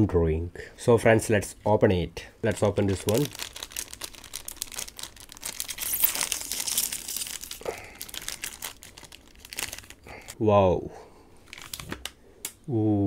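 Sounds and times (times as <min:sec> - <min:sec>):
plastic wrapper crinkling: 0:02.4 - 0:10.4, 0:11.4 - 0:12.2
plastic wrapper tearing: 0:02.5 - 0:10.4, 0:11.4 - 0:12.2.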